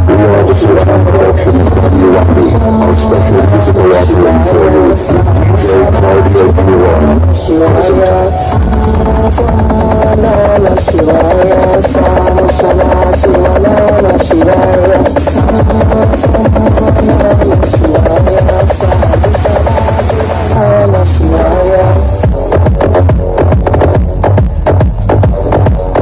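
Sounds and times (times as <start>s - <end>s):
loud electronic dance music: 0.0s - 26.0s.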